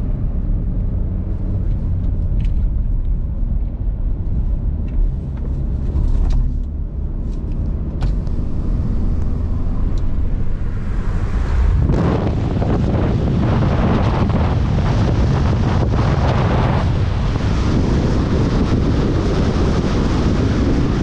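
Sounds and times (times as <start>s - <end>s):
car engine and tyre rumble: 0.0s - 21.0s.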